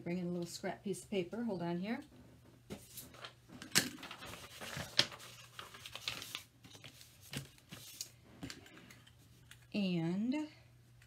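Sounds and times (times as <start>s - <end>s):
paper rustling on tabletop: 2.7s - 8.6s.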